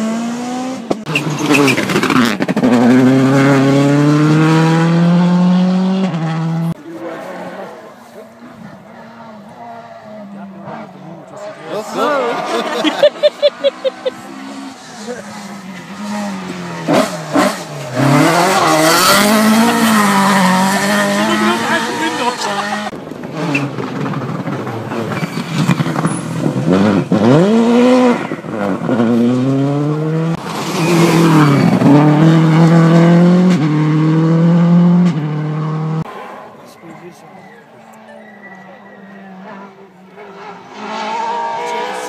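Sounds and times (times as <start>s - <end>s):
rally car engines revving: 0.0s - 42.0s.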